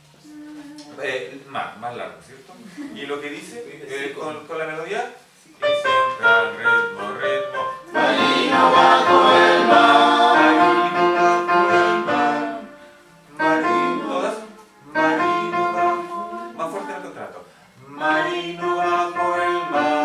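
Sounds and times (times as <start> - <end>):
choir singing: 7.9 - 20.0.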